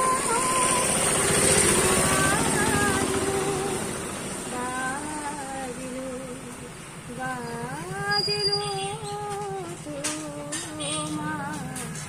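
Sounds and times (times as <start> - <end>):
vehicle engine running: 0.0 - 12.0
woman singing wavering notes: 0.0 - 12.0.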